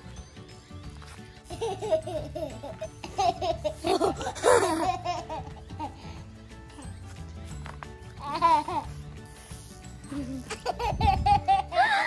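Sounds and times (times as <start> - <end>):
girl laughing: 1.5 - 6.0, 8.2 - 9.0, 10.1 - 12.0.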